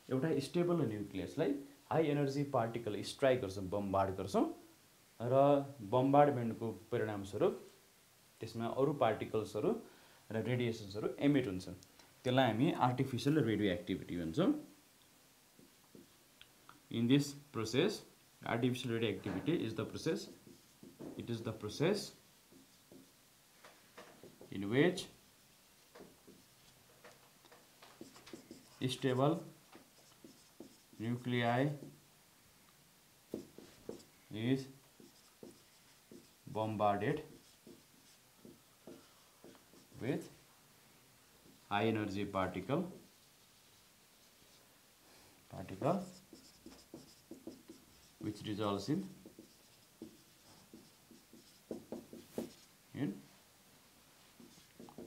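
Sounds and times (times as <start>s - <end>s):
marker writing on whiteboard: 15.6s - 16.2s, 19.3s - 24.7s, 25.8s - 32.0s, 33.3s - 34.2s, 34.8s - 40.4s, 41.4s - 41.7s, 45.6s - 52.7s, 54.2s - 55.0s.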